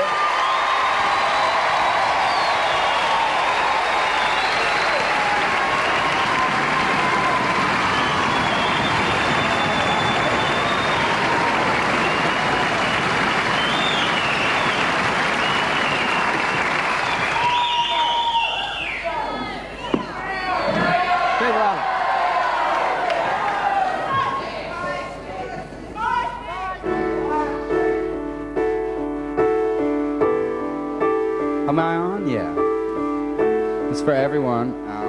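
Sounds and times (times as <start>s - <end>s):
theatre audience applauding: 0.0s - 19.6s, 20.8s - 24.1s
high calls from audience: 0.0s - 26.9s.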